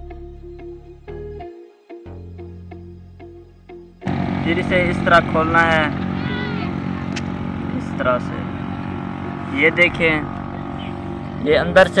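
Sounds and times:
loud engine drone: 0:04.0 - 0:12.0.

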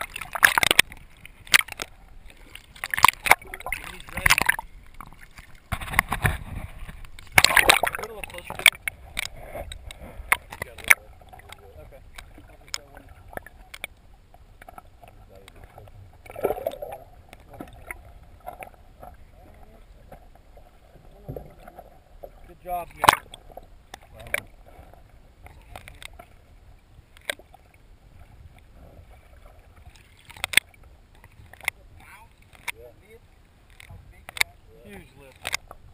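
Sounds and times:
sharp clicks and knocks underwater: 0:00.0 - 0:32.9, 0:33.6 - 0:35.9
low water rumble: 0:00.0 - 0:35.9.

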